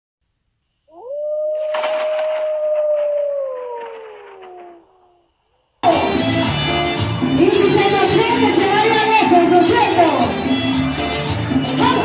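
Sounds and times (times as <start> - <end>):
wolf howling: 0.9 - 5.3.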